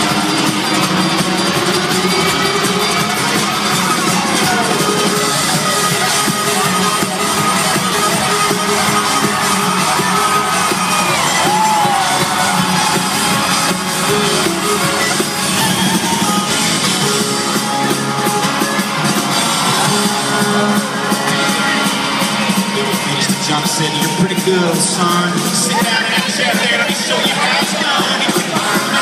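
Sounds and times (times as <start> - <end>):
live band playing: 0.0 - 29.0.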